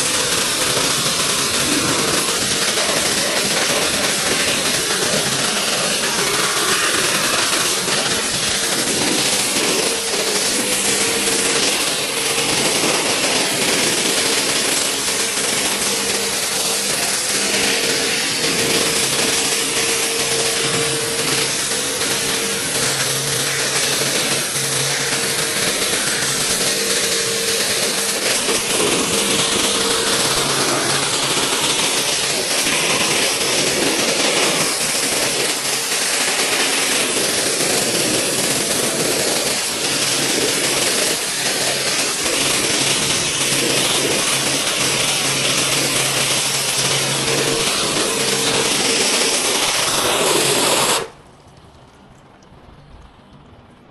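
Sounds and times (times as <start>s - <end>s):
foam cannon spraying hiss: 0.0s - 51.2s
steady hum: 0.0s - 53.9s.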